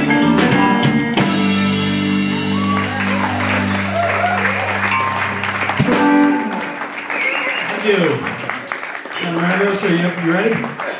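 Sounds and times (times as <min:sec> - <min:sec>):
live rock band final chord: 0:00.0 - 0:07.1
audience applause and cheering: 0:01.6 - 0:10.9.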